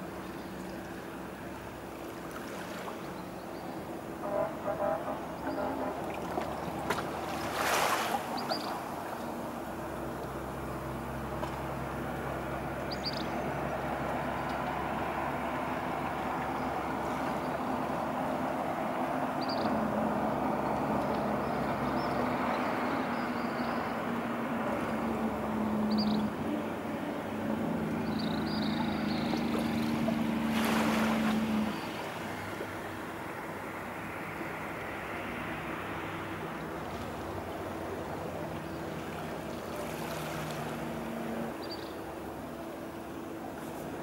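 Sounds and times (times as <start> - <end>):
motorboat engine droning: 0.0 - 44.0.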